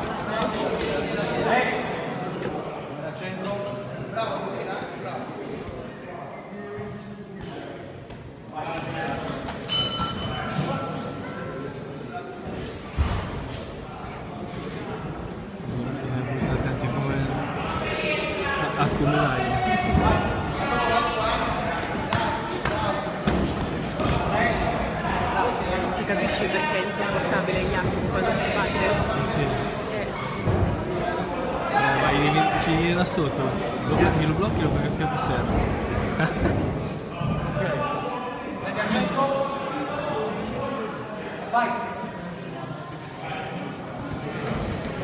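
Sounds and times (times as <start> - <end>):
men calling out and talking: 15.6 - 42.1.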